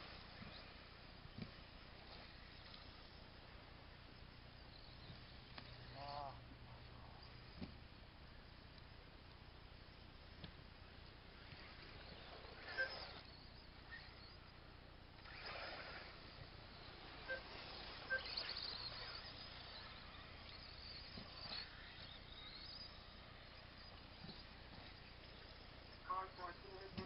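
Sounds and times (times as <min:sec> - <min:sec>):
faint outdoor background noise: 0:00.0 - 0:27.0
voices: 0:05.5 - 0:07.7, 0:23.0 - 0:27.0.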